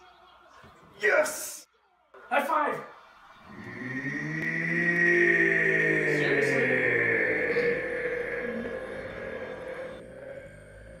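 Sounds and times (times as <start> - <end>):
slowed-down sustained tone: 3.5 - 11.0.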